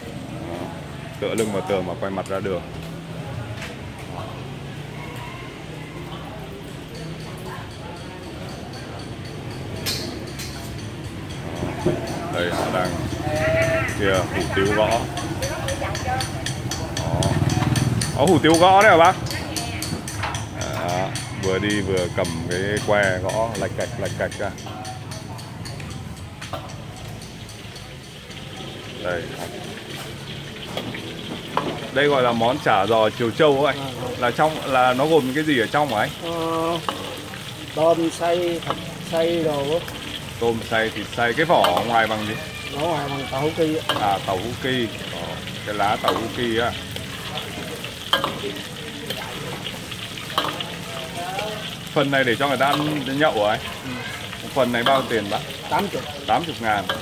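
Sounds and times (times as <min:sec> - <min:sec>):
spring rolls sizzling in hot oil: 0:12.3 - 0:24.9, 0:26.4 - 0:57.0
ladle clicking against wok: 0:15.0 - 0:28.9, 0:34.2 - 0:37.8, 0:39.8 - 0:57.0.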